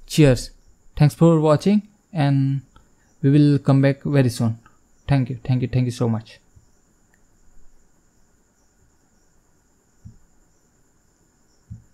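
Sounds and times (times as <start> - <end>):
soft low thump: 10.0 - 10.2, 11.7 - 11.9.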